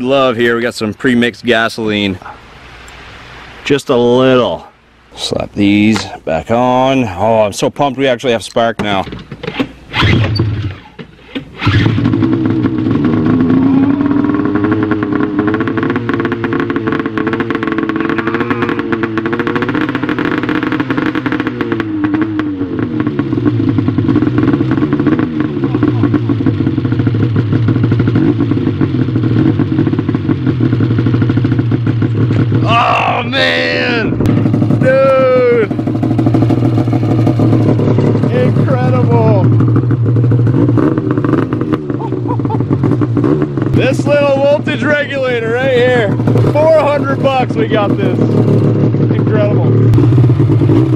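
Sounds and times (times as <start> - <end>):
snowmobile engine starting and idling: 5.2 - 50.9.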